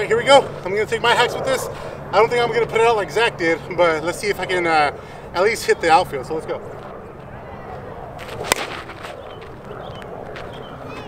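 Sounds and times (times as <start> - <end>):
bat striking softball: 8.2 - 9.6.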